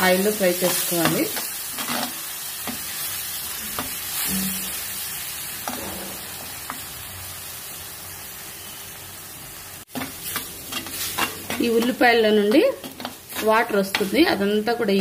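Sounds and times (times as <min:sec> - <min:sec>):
paste sizzling in oil: 0:00.0 - 0:15.0.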